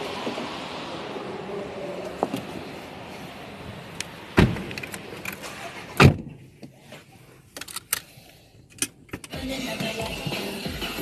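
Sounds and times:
music playing: 9.3 - 11.0.

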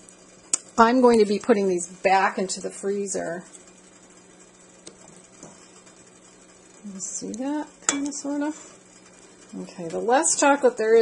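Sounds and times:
steady low hum: 0.0 - 11.0
stirring in metal bowl: 7.2 - 11.0.

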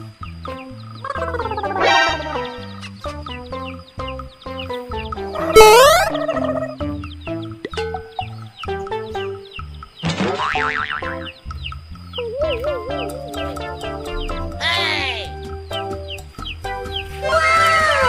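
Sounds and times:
upbeat children's music: 0.0 - 18.0.

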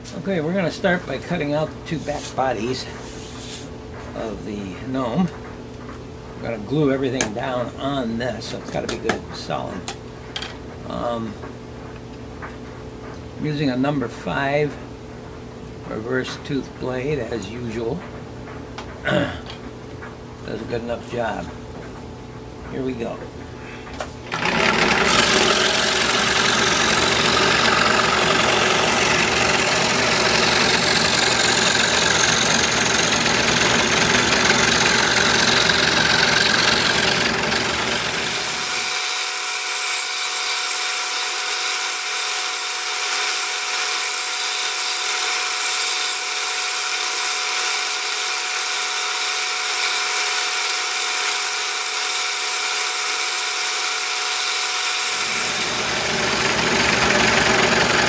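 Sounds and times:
scroll saw cutting wood: 24.3 - 58.0.

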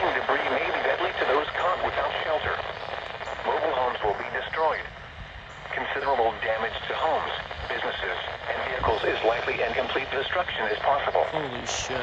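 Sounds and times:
synthesized voice through small speaker: 5.8 - 12.0.

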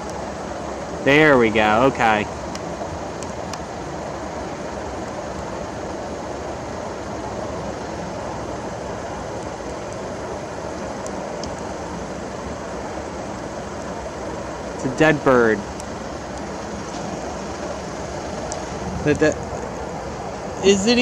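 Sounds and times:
faint ticks: 0.0 - 0.2, 2.4 - 3.7, 10.9 - 11.8, 13.3 - 14.0, 15.7 - 20.4
outdoor background noise: 0.0 - 21.0.

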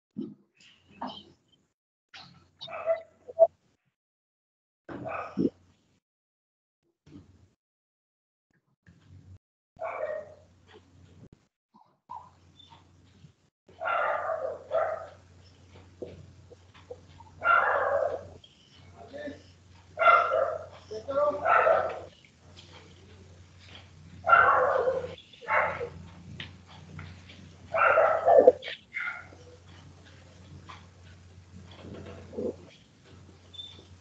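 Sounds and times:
dog barking: 2.6 - 3.5, 5.0 - 5.5, 9.8 - 10.4, 13.8 - 15.2, 17.3 - 19.1, 20.0 - 22.1, 24.2 - 26.1, 27.7 - 29.8.

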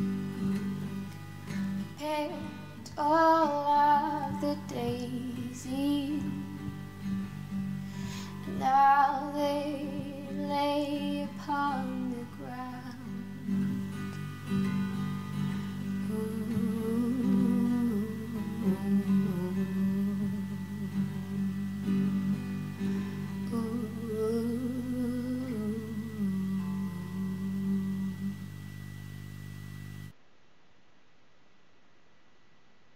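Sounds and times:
classical guitar playing: 0.0 - 28.6
woman humming: 15.9 - 22.4, 23.5 - 28.8.

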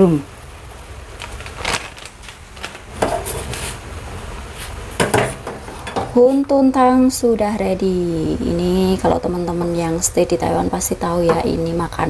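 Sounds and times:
crackles of crumbling dried fish skin: 1.1 - 2.9.

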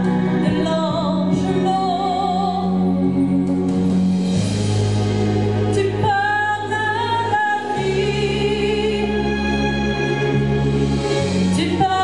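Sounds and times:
woman singing: 0.0 - 3.2, 5.7 - 9.3, 11.5 - 12.0
low instrumental accompaniment: 0.0 - 12.0.

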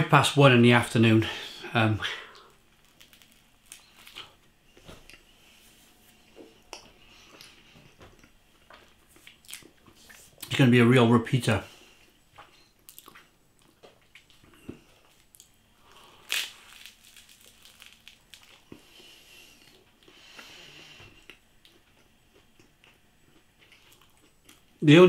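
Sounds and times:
person chewing with mouth closed: 12.0 - 24.6.

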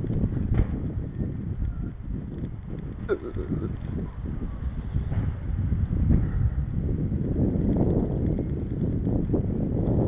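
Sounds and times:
bicycle road noise: 0.0 - 10.0
wind buffeting microphone: 0.0 - 10.0.

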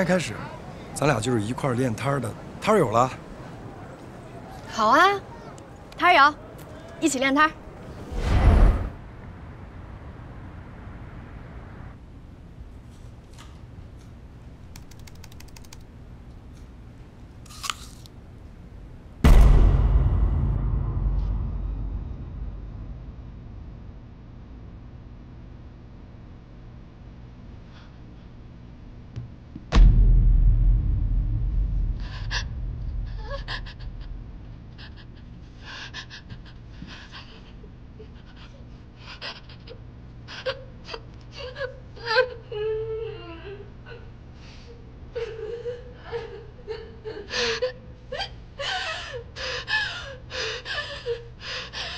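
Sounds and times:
laptop keys clicking: 14.7 - 15.9
apple bite crunch: 17.5 - 18.1
deep boom sound effect: 19.2 - 24.5, 29.7 - 35.1
woman crying: 33.1 - 44.1, 45.1 - 51.9.

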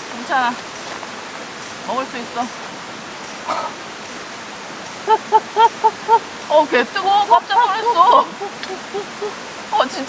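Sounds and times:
stream rushing: 0.0 - 10.0
person laughing: 5.1 - 6.2, 7.7 - 9.4.

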